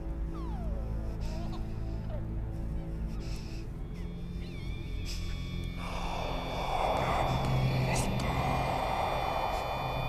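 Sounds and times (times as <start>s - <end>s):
low droning film score: 0.0s - 10.0s
wavering high cry: 3.2s - 7.7s
rush of noise: 5.8s - 10.0s.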